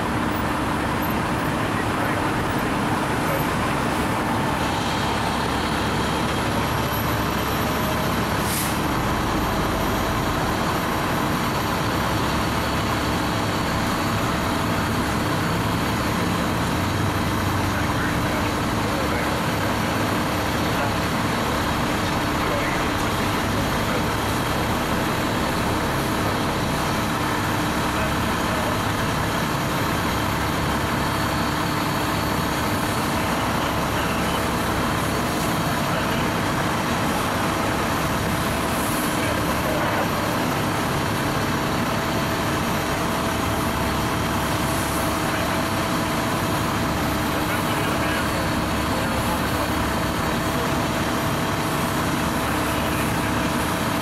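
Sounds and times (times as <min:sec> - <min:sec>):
fire engine pump running: 0:00.0 - 0:54.0.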